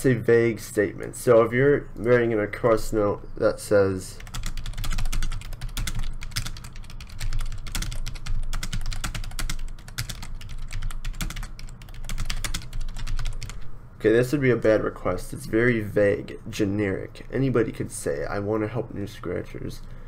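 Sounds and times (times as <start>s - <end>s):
computer keyboard typing: 4.2s - 13.6s.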